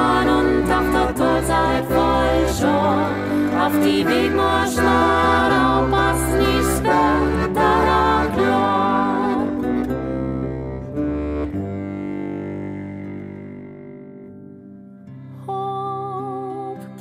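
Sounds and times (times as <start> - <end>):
violin zither and accordion playing: 0.0 - 14.2.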